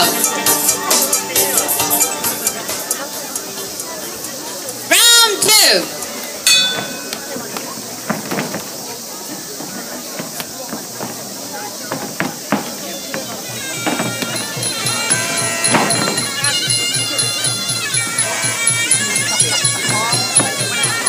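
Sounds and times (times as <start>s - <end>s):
crowd chatter: 0.0s - 21.0s
sharp smacks of kicks landing: 6.5s - 16.6s
steady drum beat: 9.6s - 21.0s
reedy oboe melody: 12.9s - 21.0s.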